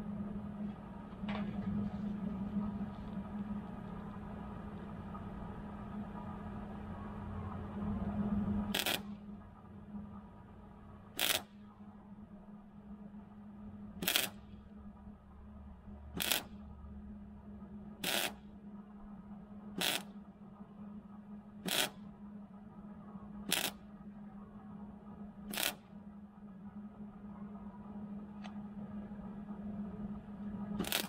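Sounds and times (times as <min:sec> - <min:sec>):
steady low hum: 0:00.0 - 0:31.0
arc welder crackling: 0:08.6 - 0:09.3, 0:11.1 - 0:11.8, 0:14.0 - 0:14.6, 0:16.2 - 0:16.7, 0:18.0 - 0:18.6, 0:19.7 - 0:20.3, 0:21.6 - 0:22.2, 0:23.4 - 0:24.0, 0:25.4 - 0:26.0, 0:30.7 - 0:31.0.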